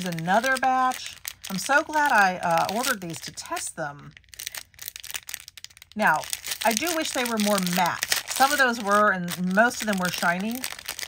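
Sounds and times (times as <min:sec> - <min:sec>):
packaging crinkling and rustling: 0:00.0 - 0:11.0.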